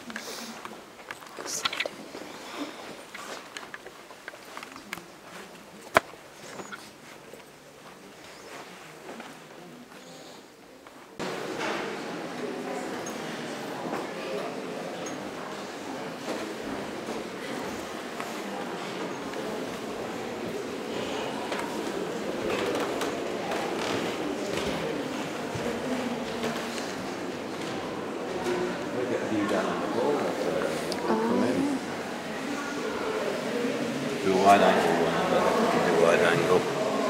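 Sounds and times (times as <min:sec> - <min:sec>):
indistinct chatter of many people: 0:00.0 - 0:37.0.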